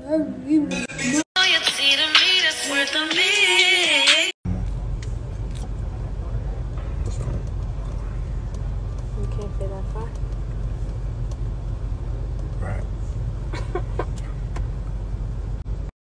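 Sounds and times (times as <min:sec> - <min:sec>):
music: 0:00.7 - 0:04.3
car cabin rumble: 0:04.5 - 0:15.6.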